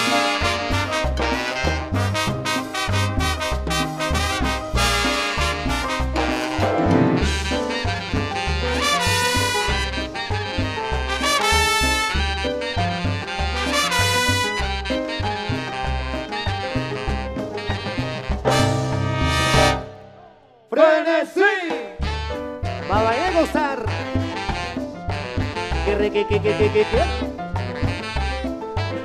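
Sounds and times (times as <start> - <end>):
saxophones: 0.0 - 20.5
tropical dance orchestra: 0.0 - 29.0.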